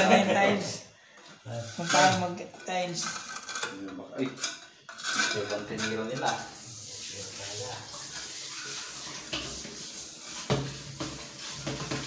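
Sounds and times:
light clinking and scraping: 1.6 - 6.5
men talking: 5.2 - 8.0.

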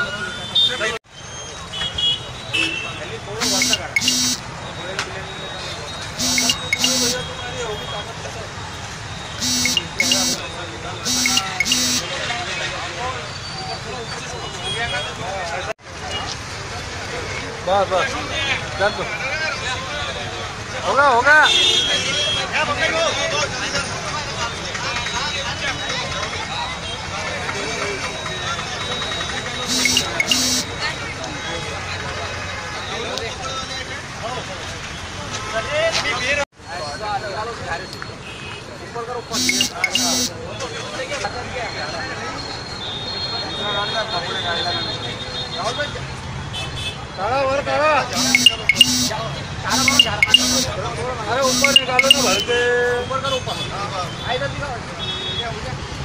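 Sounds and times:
street traffic noise: 0.0 - 56.0.

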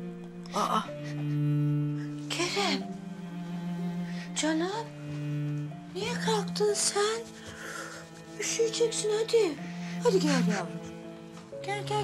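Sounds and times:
low bowed string note: 0.0 - 7.5.

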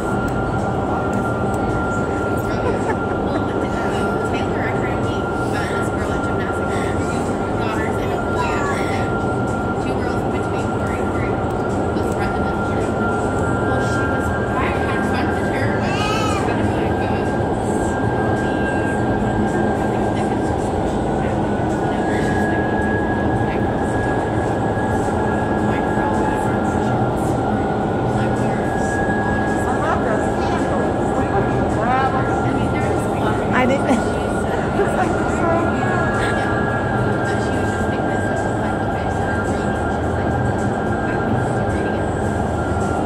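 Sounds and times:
loud steady rush of air: 0.0 - 43.0
thin high whine: 0.0 - 43.0.

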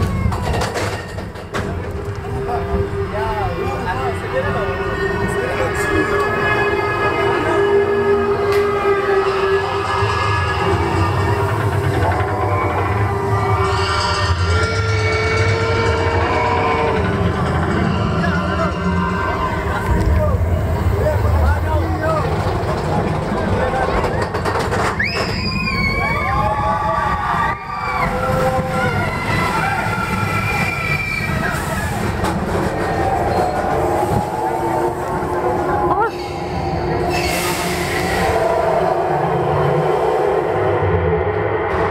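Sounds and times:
roller coaster climbing lift hill: 0.0 - 41.9.

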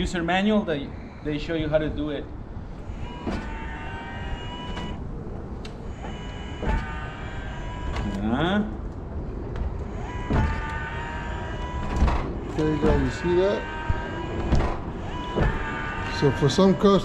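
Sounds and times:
electric motor whining: 2.7 - 8.6, 9.8 - 17.0
sharp mechanical knocks: 3.0 - 3.8, 5.6 - 7.1, 9.5 - 16.1.

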